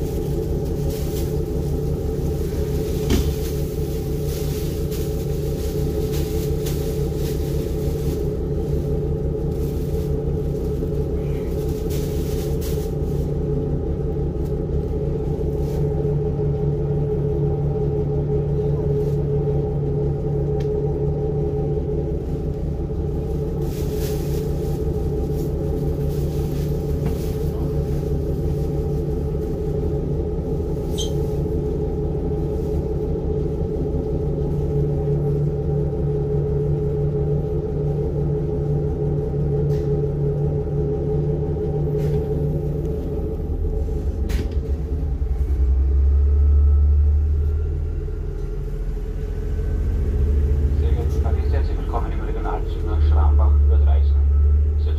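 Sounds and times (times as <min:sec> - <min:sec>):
train diesel engine droning: 0:00.0 - 0:54.9.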